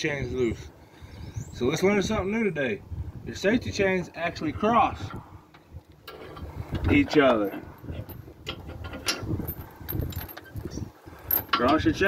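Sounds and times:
metal chains rattling: 0:06.1 - 0:12.0.

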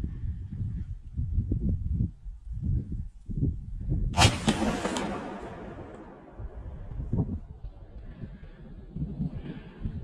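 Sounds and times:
shotgun shot with echoes: 0:04.2 - 0:06.9.

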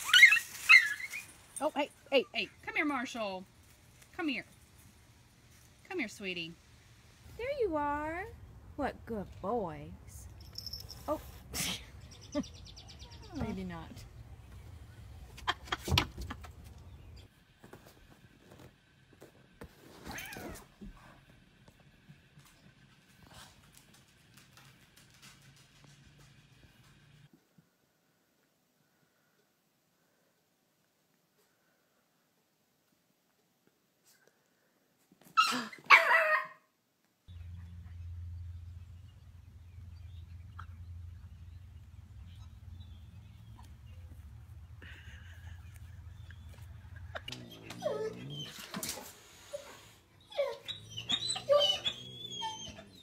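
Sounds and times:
small dog barking: 0:35.4 - 0:36.6
steady low hum: 0:37.3 - 0:48.2.

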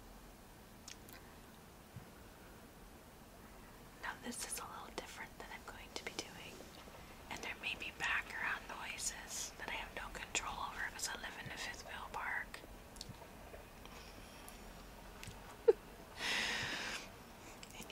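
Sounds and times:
woman whispering: 0:04.0 - 0:06.7, 0:07.3 - 0:12.6, 0:17.6 - 0:17.9.

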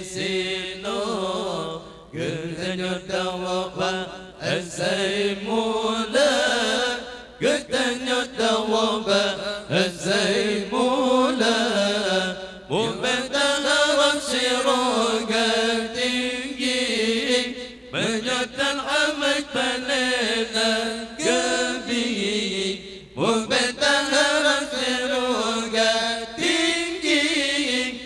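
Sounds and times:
man chanting recitation: 0:00.0 - 0:28.0.

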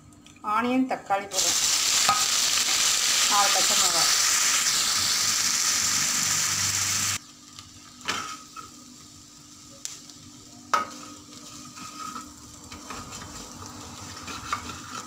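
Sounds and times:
vegetables sizzling in hot oil: 0:01.3 - 0:15.0.

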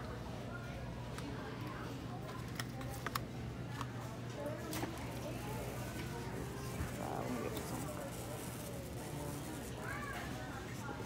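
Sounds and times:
store background noise: 0:00.0 - 0:11.0.

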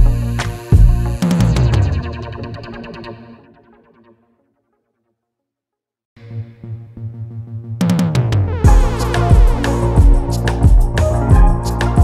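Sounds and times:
background music with echo: 0:06.2 - 0:12.0.

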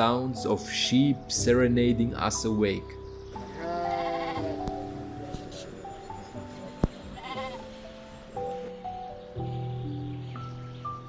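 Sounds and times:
background music with held notes: 0:00.0 - 0:11.0
sheep bleating: 0:03.5 - 0:04.7, 0:07.0 - 0:07.8.

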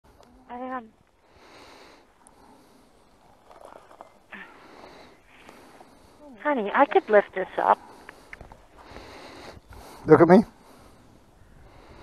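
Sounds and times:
soft breathing: 0:01.2 - 0:12.0.

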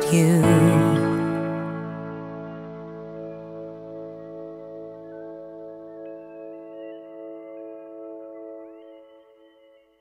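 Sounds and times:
person singing: 0:00.0 - 0:02.2.

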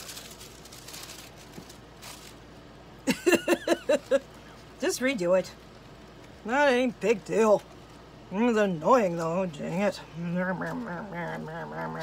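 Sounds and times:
paper rustling: 0:00.0 - 0:02.5
woman laughing loudly: 0:03.1 - 0:04.2.

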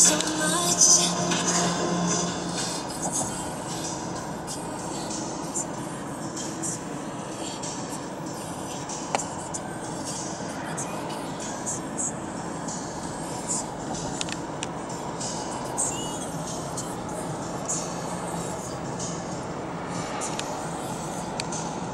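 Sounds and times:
road and tyre noise: 0:00.0 - 0:21.9.

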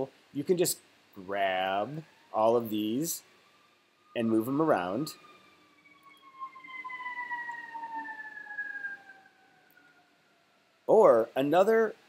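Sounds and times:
siren wailing: 0:01.2 - 0:11.0.

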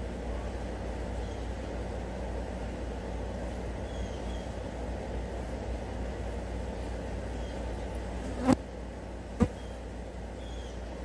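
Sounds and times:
flies buzzing: 0:06.9 - 0:09.9.

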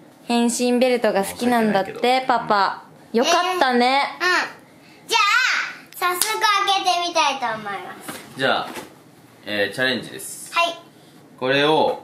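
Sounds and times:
child calling out: 0:05.1 - 0:05.8
hand claps: 0:06.0 - 0:06.4.

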